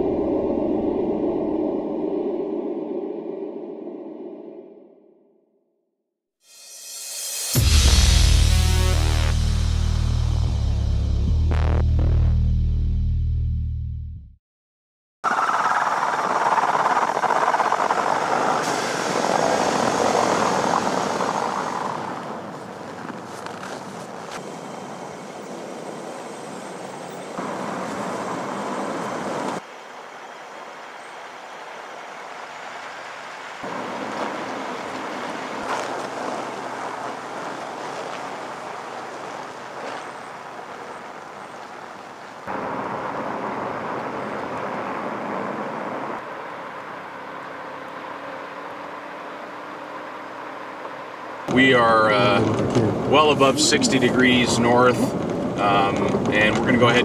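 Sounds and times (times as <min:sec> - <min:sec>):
vehicle driving on snowy road: 0:15.3 - 0:57.0.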